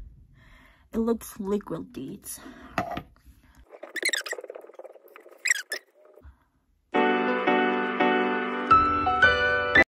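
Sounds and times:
fingertips rubbing cream on skin: 3.7s - 6.2s
short skin squeaks: 3.8s - 6.2s.

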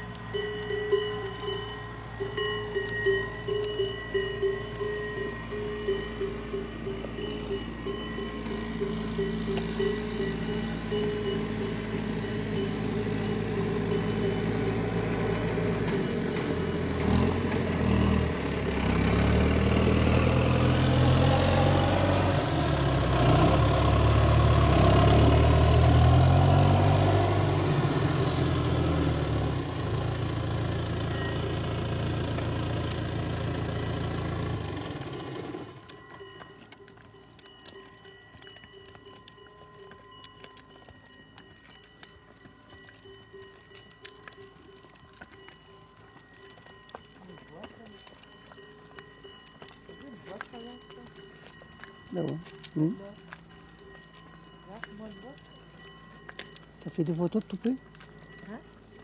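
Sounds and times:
vehicle engine running: 0.0s - 59.0s.

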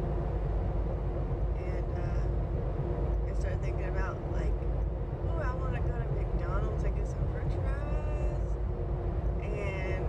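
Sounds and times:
woman talking: 1.6s - 2.3s, 3.3s - 4.6s, 5.2s - 8.5s, 9.4s - 10.0s.

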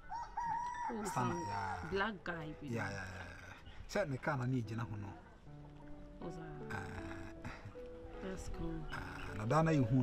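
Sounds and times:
rooster crowing: 0.0s - 1.9s.

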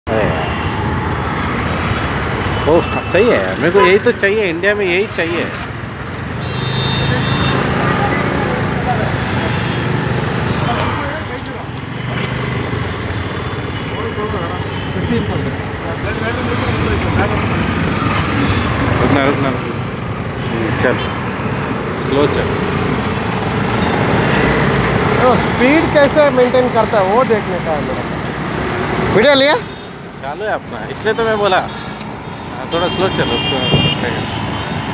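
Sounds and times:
road traffic rumble: 0.0s - 34.9s
wind: 0.0s - 34.9s.

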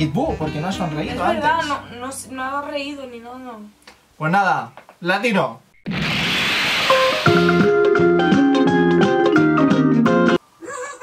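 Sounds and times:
jingle music with beat: 0.0s - 2.4s
hissing whoosh: 5.9s - 7.4s.

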